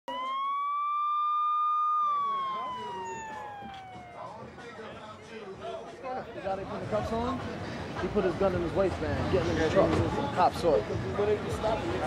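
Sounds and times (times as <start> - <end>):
police siren wailing: 0.1 - 4.6
street noise: 0.1 - 12.0
crowd voices: 2.2 - 12.0.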